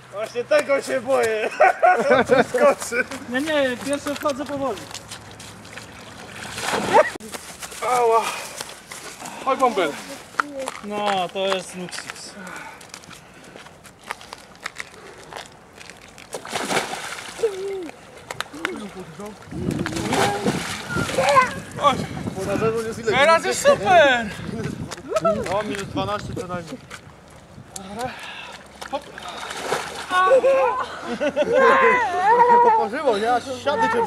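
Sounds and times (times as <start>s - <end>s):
water sloshing: 2.3s - 10.9s, 12.7s - 22.9s, 26.6s - 30.8s
voices of swimmers: 17.3s - 27.0s, 27.6s - 34.0s.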